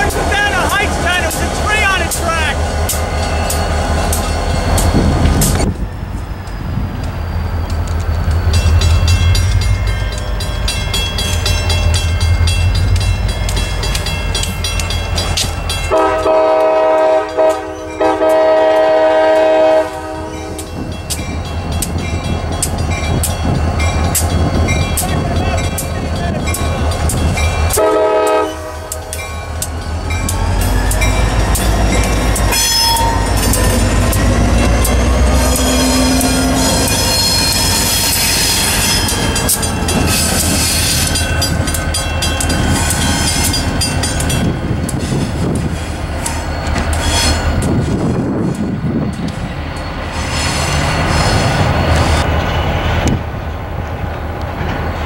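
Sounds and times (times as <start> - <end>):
locomotive horn blasts: 15.9 - 20.6, 27.7 - 29.0.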